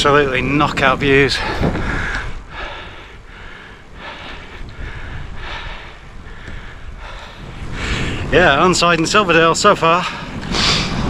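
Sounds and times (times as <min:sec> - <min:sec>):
tyres on road: 0:00.0 - 0:11.0
wind rumble on microphone: 0:00.0 - 0:11.0
cyclist heavy breathing: 0:01.2 - 0:08.5, 0:09.9 - 0:11.0.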